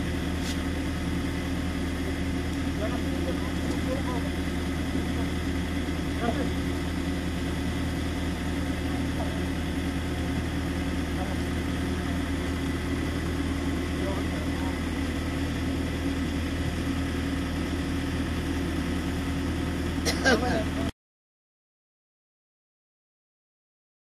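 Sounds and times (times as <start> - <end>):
vehicle engine idling: 0.0 - 20.9.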